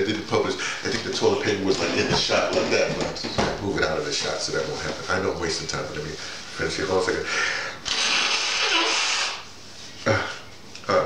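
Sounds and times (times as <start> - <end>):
man blowing his nose: 7.8 - 9.6.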